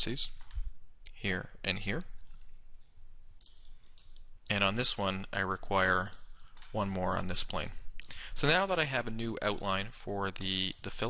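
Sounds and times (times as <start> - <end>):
computer mouse clicking: 3.4 - 4.3, 5.8 - 6.8.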